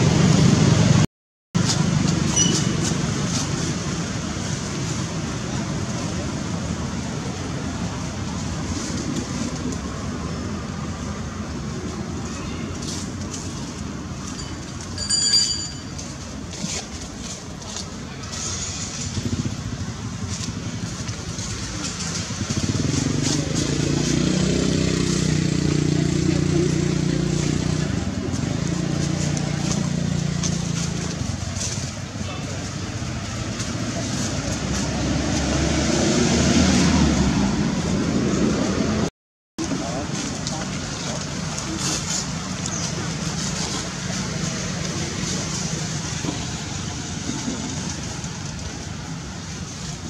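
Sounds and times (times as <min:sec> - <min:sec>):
vehicle engine running: 0:16.5 - 0:35.5, 0:39.6 - 0:50.0
faint voices: 0:39.6 - 0:50.0.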